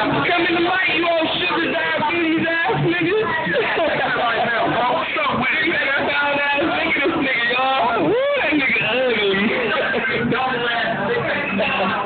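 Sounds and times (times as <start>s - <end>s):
men talking and calling out: 0.0s - 12.0s
music playing: 0.0s - 12.0s.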